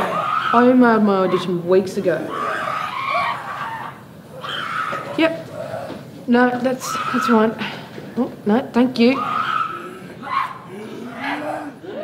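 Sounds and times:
people wailing and shrieking: 0.0 - 7.9, 9.0 - 12.0.

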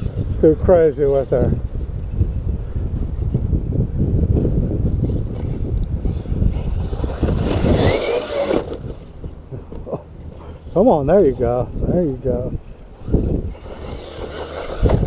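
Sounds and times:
wind buffeting microphone: 0.0 - 15.0
electric motor whine rising: 6.1 - 9.3, 12.8 - 15.0.

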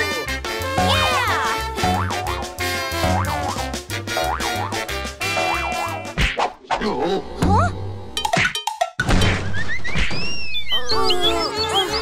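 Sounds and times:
upbeat children's music: 0.0 - 6.2.

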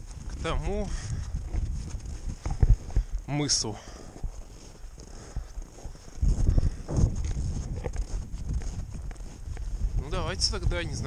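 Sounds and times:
footsteps crunching through snow: 0.0 - 11.0
wind buffeting microphone: 0.0 - 11.0.

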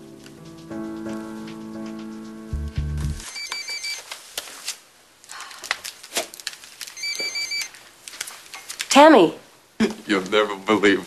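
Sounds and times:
telephone ringing: 3.2 - 4.0, 7.0 - 7.7.

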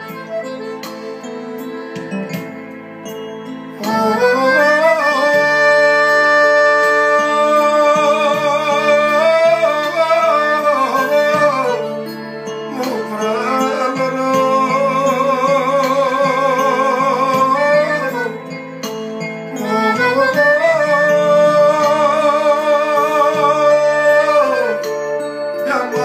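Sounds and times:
piano accordion: 0.0 - 26.0.

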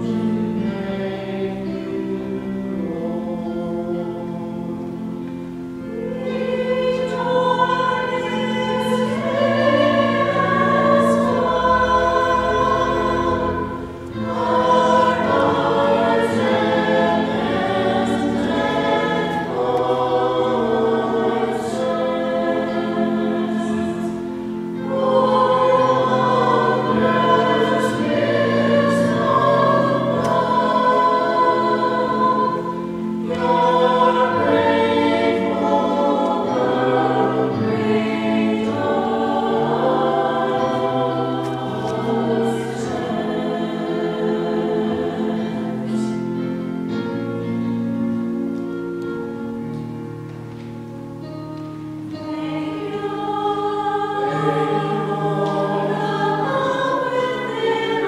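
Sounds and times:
group singing a hymn: 0.0 - 50.0, 51.2 - 58.0
low accompaniment notes: 0.0 - 58.0.

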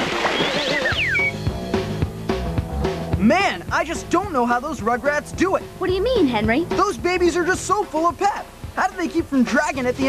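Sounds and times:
whistle-like glides: 0.0 - 1.5
music with steady beat: 0.7 - 10.0.

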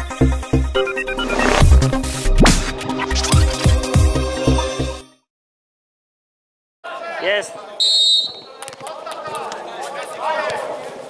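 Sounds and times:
players shouting: 6.9 - 11.0.

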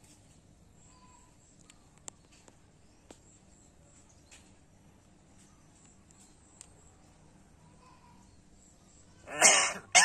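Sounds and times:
myna bird harsh call: 9.2 - 10.0.

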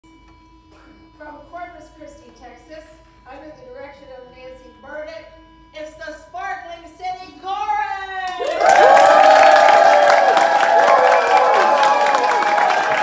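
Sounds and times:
woman speaking: 1.2 - 8.4
audience applause and cheering: 8.4 - 13.0
whoops: 8.4 - 13.0.

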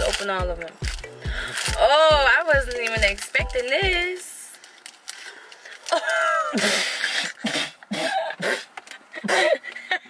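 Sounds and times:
woman laughing: 5.9 - 7.0, 9.1 - 10.0.

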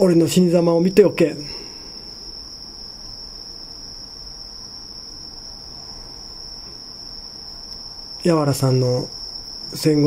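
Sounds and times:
crickets chirping: 0.0 - 10.0
faint room noise: 0.0 - 10.0.

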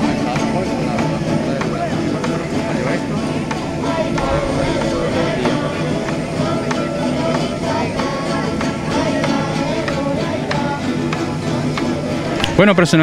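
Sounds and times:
drum: 0.0 - 12.6
strummed small guitars: 0.0 - 13.0.

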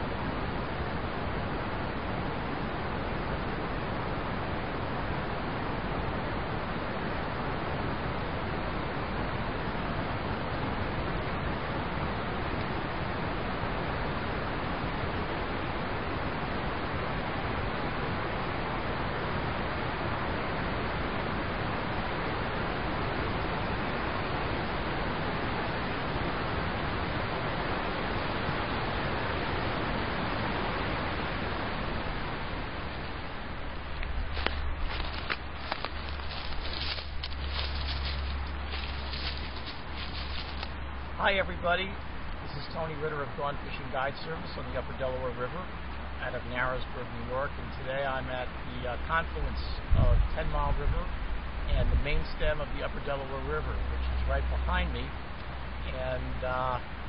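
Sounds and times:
flowing river water: 0.0 - 41.2.

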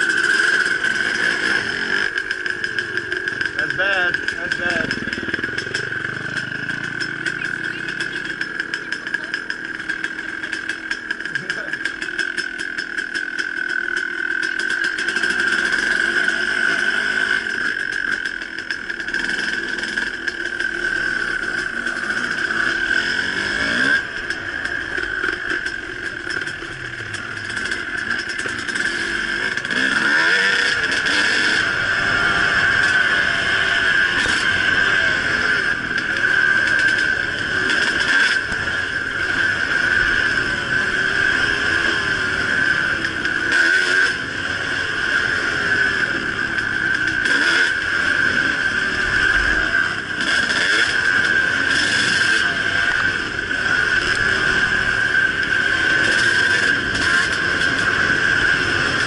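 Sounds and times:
dirt bike engine running: 0.0 - 59.0.

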